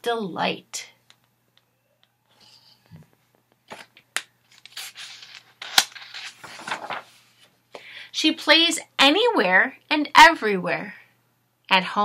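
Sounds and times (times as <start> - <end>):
paper pages rustling: 3.6 - 7.6.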